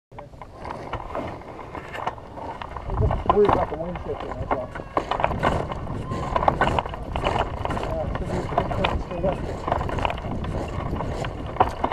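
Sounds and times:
wind on microphone: 0:00.8 - 0:11.9.

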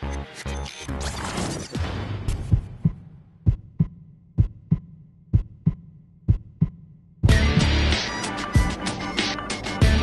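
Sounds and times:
heartbeat double thumps: 0:02.3 - 0:07.5.

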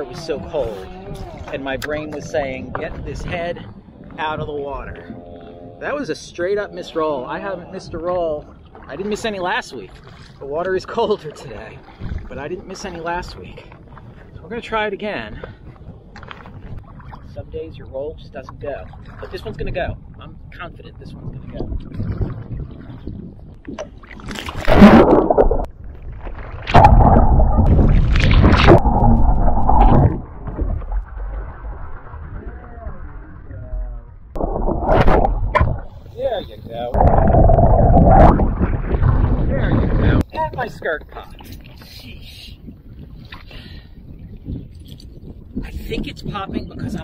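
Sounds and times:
muffled underwater water rushing: 0:00.0 - 0:42.0
kayak splash: 0:08.4 - 0:10.4, 0:23.7 - 0:33.6, 0:34.4 - 0:36.4.

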